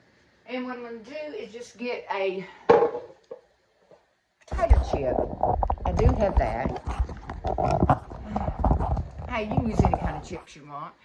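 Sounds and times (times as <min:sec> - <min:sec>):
phone handling knocks and rubbing: 0:04.6 - 0:10.4.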